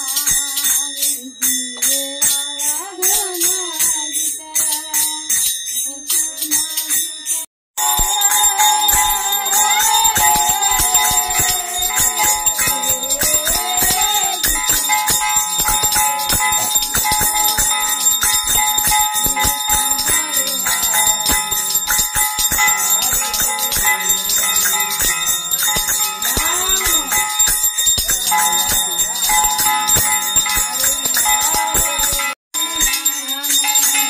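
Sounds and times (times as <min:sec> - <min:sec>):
hand bell ringing rapidly: 0:00.0 - 0:34.0.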